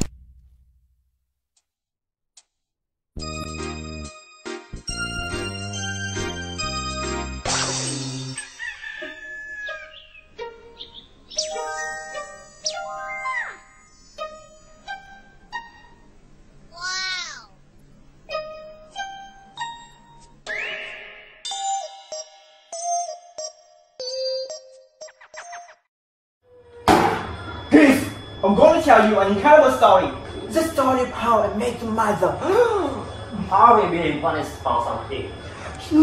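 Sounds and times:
plucked background music: 3.2 - 8.4, 9.6 - 16.1, 18.3 - 25.7.

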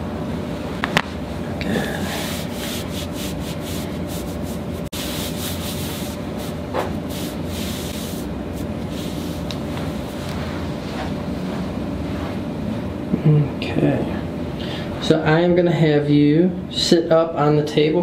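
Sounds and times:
hand rubbing fabric: 1.8 - 12.5.

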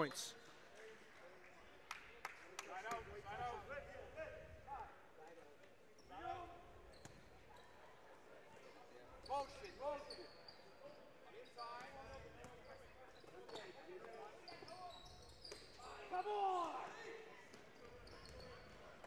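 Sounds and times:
sneakers squeaking: 6.9 - 7.8, 12.7 - 16.0, 17.8 - 18.9.

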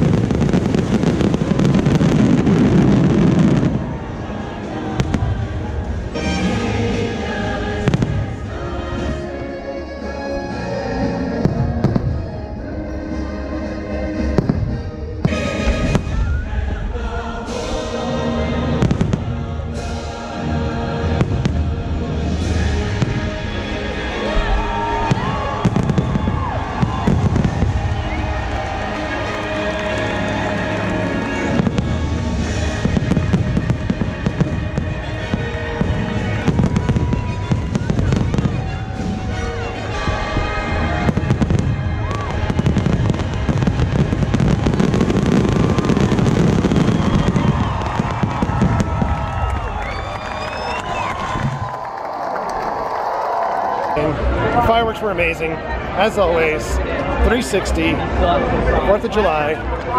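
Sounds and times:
fireworks bursting: 0.0 - 9.3, 14.2 - 20.1, 21.0 - 52.8
loud music soundtrack: 0.0 - 52.0.

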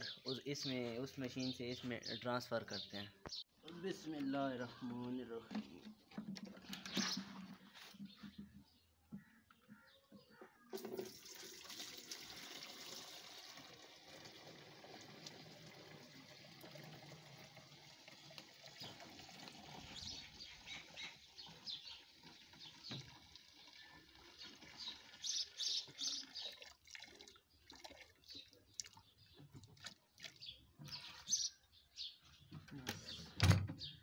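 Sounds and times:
liquid pouring and splashing: 10.7 - 30.5.

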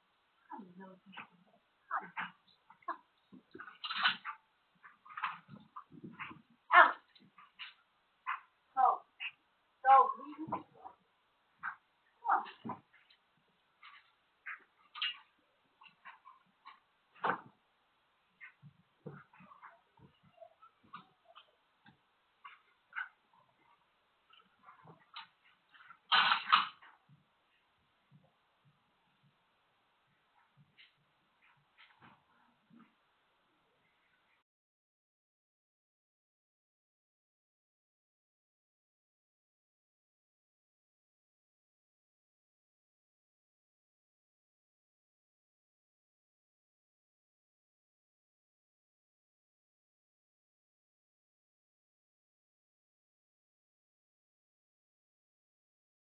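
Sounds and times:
microphone hiss: 0.0 - 34.4.

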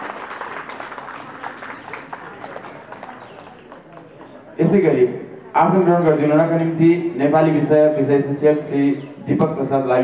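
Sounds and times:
background chatter of voices: 1.1 - 7.6.

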